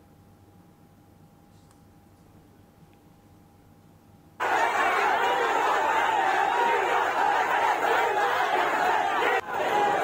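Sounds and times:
crowd of protesters shouting: 4.4 - 10.0.

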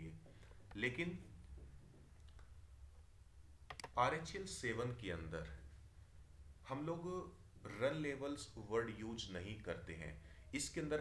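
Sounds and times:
faint low hum: 0.0 - 11.0
computer mouse clicks: 3.7 - 4.0.

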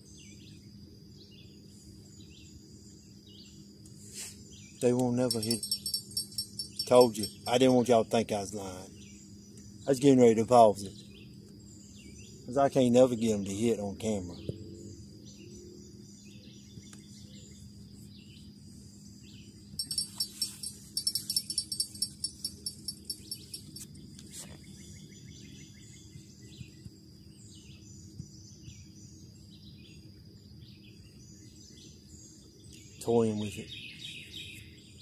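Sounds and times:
small birds chirping: 0.0 - 35.0
high insect drone: 0.1 - 24.0
sharp high-pitched ticks: 5.3 - 7.8, 19.8 - 23.9.

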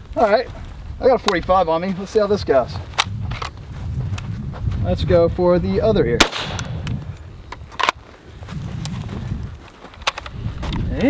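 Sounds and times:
pistol shot crack: 6.2 - 7.0.

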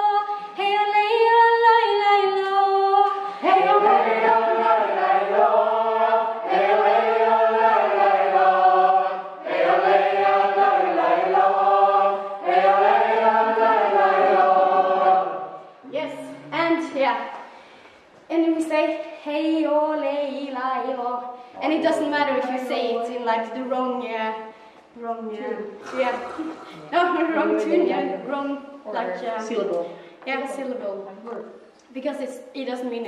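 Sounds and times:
group singing in unison: 0.0 - 16.6, 25.6 - 29.8.

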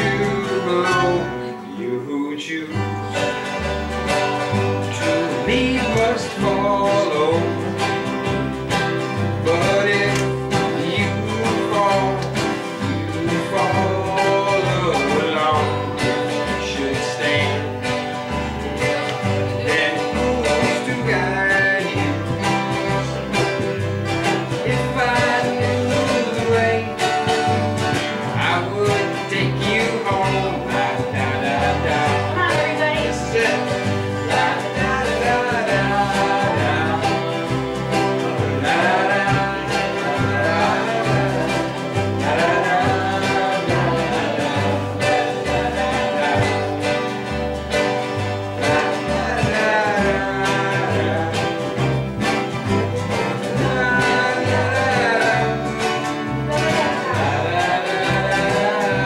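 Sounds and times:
strummed acoustic guitars: 0.0 - 59.0.

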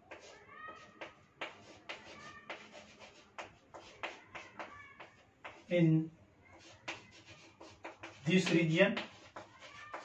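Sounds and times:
chalk squeaking: 0.0 - 5.8, 6.4 - 10.0
chalk writing on chalkboard: 0.0 - 5.9, 6.5 - 10.0.

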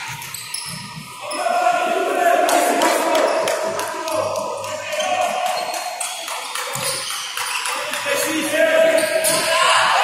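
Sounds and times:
spectators yelling: 1.2 - 5.7, 8.1 - 10.0
players shouting: 1.2 - 6.0, 7.8 - 10.0.

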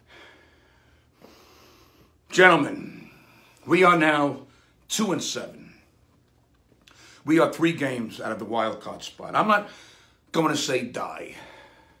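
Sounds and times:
man breathing: 0.0 - 3.6, 6.8 - 7.3, 9.6 - 10.3, 11.2 - 12.0.

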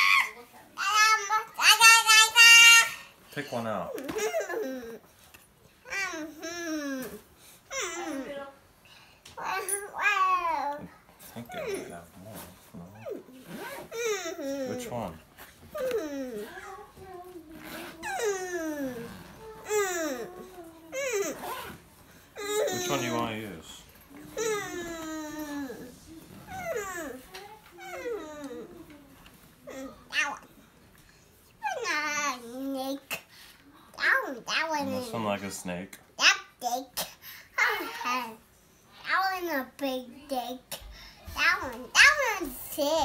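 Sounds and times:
toddler babbling: 0.0 - 3.0, 15.7 - 21.7, 24.2 - 30.5, 37.6 - 38.4.

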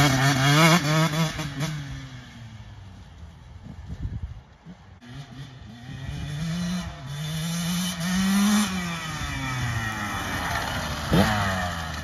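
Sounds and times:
dirt bike engine revving: 0.0 - 2.6, 4.6 - 12.0.

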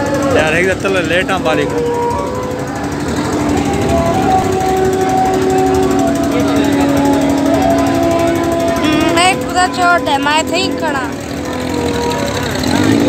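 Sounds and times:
motorcycle engines rattling: 0.0 - 13.0.

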